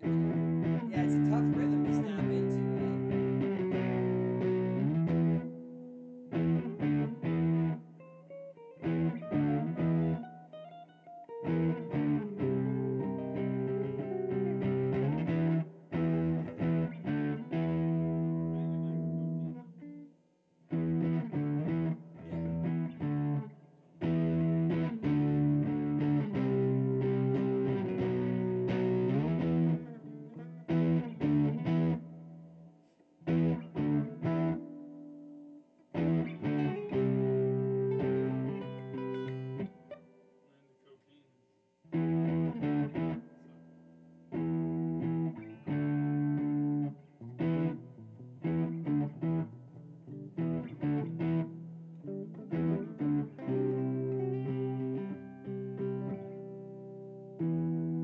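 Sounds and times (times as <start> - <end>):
electric guitar chords: 0.0 - 20.1, 20.7 - 40.3, 41.9 - 58.0.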